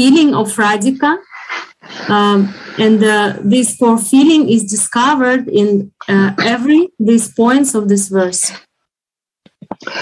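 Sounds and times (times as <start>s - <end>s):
woman speaking: 0.0s - 1.3s, 2.0s - 8.7s.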